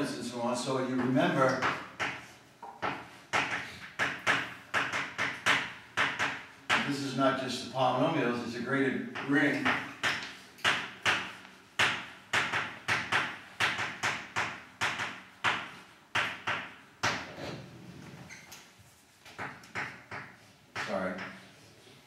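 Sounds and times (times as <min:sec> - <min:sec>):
chalk tapping and scraping: 0:00.9 - 0:07.0, 0:09.1 - 0:17.5.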